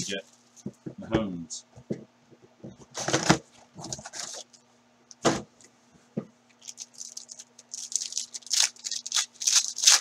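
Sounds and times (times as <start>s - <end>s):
cardboard and wrapper rustling: 6.6s - 10.0s.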